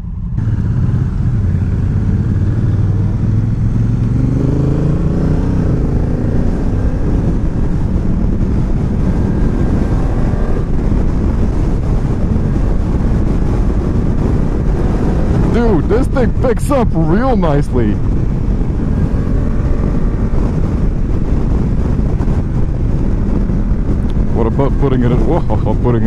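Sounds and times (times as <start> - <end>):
motorcycle engine accelerating: 0.0 - 26.0
road and wind noise: 0.0 - 26.0.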